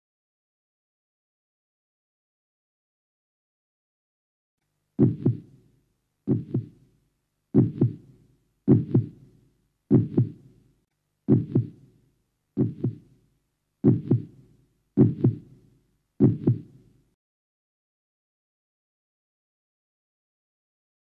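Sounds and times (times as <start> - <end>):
heartbeat double thumps: 5.0 - 5.5, 6.3 - 6.7, 7.6 - 8.0, 8.7 - 9.2, 9.9 - 10.4, 11.3 - 11.8, 12.6 - 13.0, 13.8 - 14.4, 15.0 - 15.5, 16.2 - 16.7.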